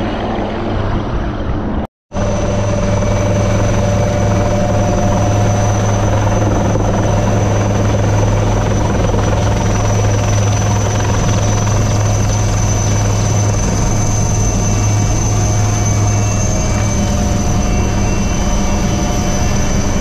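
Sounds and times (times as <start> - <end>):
helicopter rotor and engine hum: 0.0 - 20.0
high turbine whine: 0.0 - 20.0.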